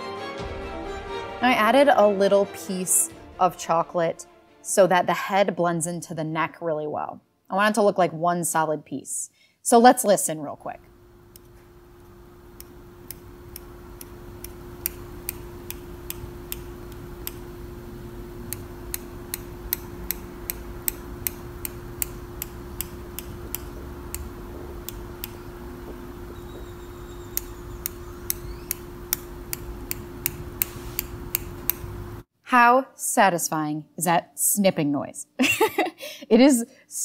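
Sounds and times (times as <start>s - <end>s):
steady low hum: 10.5s - 32.3s
scissors snipping: 12.6s - 17.5s, 18.5s - 25.4s, 27.2s - 31.9s.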